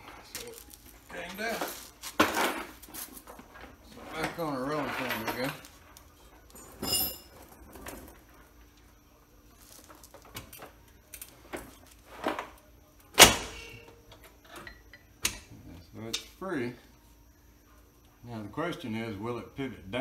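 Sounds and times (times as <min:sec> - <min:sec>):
metal clinks and knocks: 0:04.2 - 0:08.2
sharp metal clank with ring: 0:06.8 - 0:07.3.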